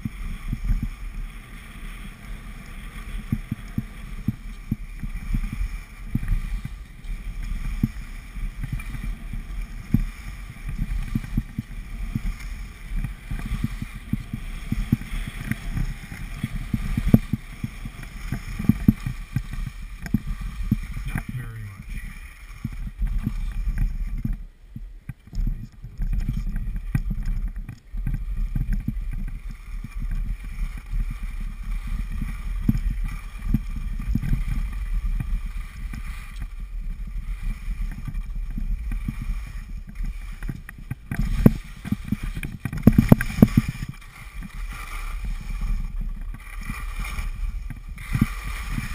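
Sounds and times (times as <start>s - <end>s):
low thumps of skis jolting: 0.0s - 48.9s
skis sliding over packed snow: 0.0s - 48.9s
wind on microphone: 0.0s - 48.9s.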